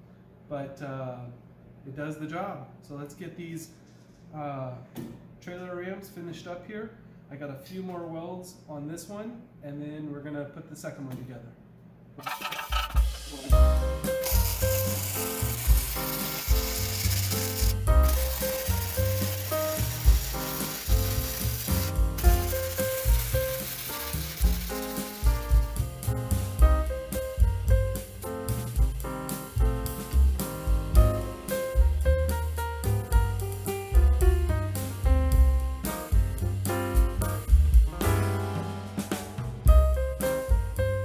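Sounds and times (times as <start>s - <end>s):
arc welding crackling sizzle: 12.2s - 36.6s
background music with bass line: 12.6s - 41.0s.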